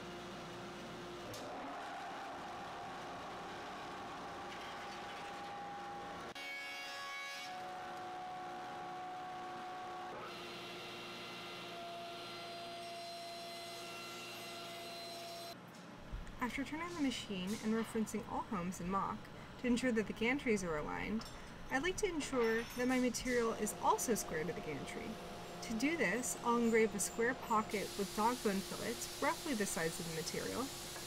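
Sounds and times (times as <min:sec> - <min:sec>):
dust collector running: 0:23.7 - 0:31.0.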